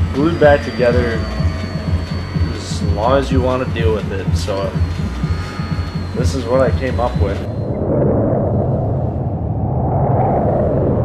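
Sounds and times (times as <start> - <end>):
loud steady low rumble: 0.0 - 11.0.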